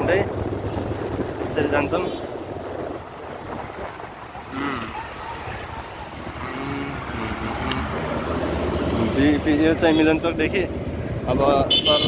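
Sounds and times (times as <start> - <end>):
vehicle engine and road noise: 0.0 - 12.0
faint voice: 4.3 - 7.7.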